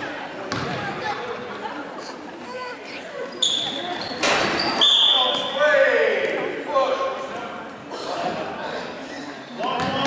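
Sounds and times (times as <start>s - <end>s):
basketball bouncing: 0.5s - 0.9s.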